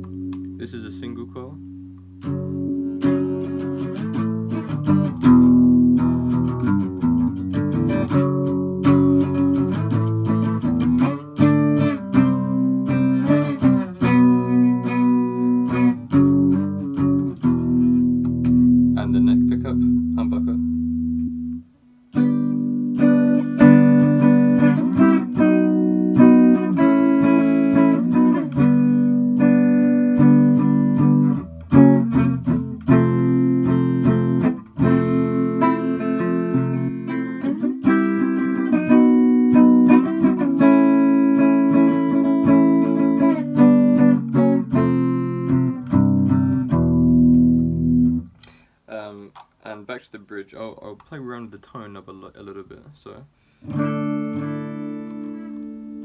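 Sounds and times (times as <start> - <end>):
clean electric guitar playing: 0.0 - 48.6, 53.6 - 56.0.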